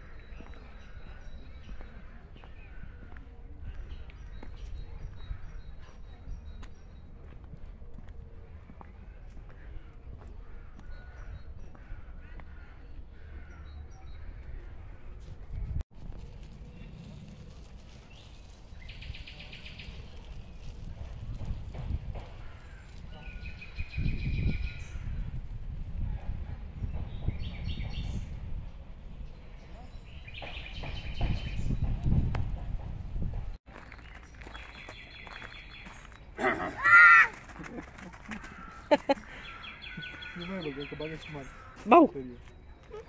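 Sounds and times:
wind rumbling on microphone: 0:00.0 - 0:33.6
young child's high cry: 0:36.6 - 0:37.4.

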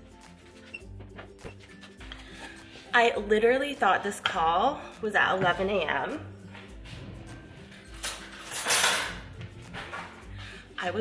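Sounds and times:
metal kitchen utensils clattering: 0:07.0 - 0:10.2.

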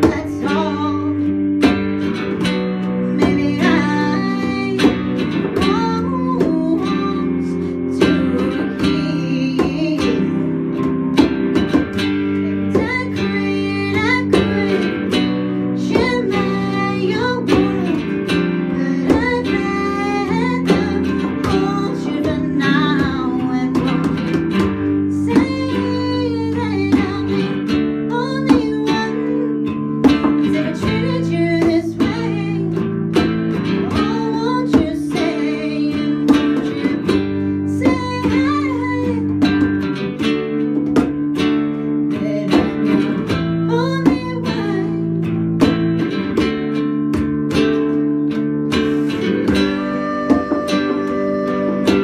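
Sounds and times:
conga hits: 0:00.0 - 0:07.4, 0:08.0 - 0:52.0
electric guitar: 0:00.0 - 0:52.0
woman singing: 0:00.0 - 0:52.0.

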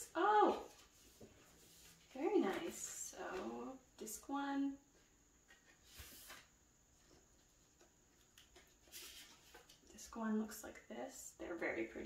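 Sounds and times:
paper rustle: 0:05.5 - 0:10.0.

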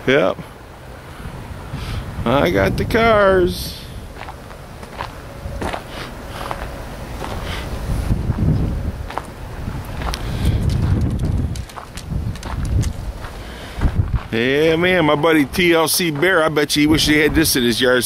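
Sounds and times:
footsteps on gravel: 0:04.1 - 0:16.6
low rumble on microphone: 0:04.9 - 0:15.6.

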